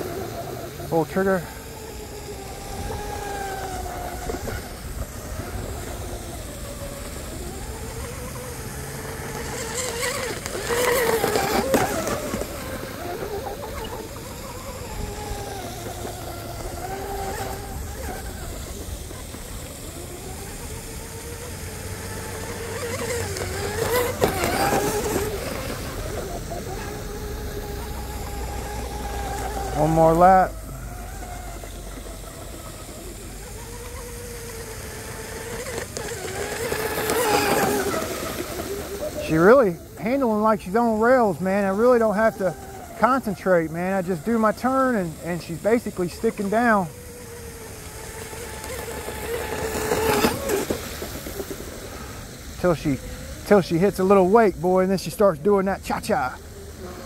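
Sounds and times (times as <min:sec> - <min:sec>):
electric motors whining: 0:00.0 - 0:57.0.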